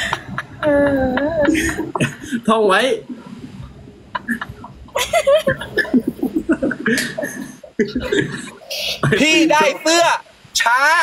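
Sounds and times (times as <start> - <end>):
man laughing heartily: 0.0 - 2.5, 4.1 - 9.7.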